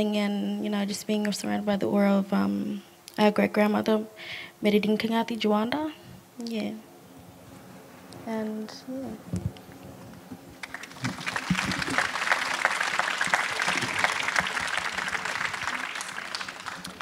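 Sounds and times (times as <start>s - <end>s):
audience applauding: 10.6s - 17.0s.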